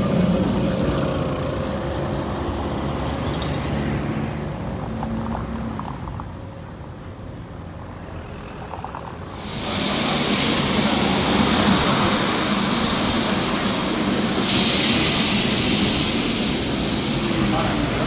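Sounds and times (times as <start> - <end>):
street traffic: 0.0 - 18.0
tram wheels on street track: 0.0 - 18.0.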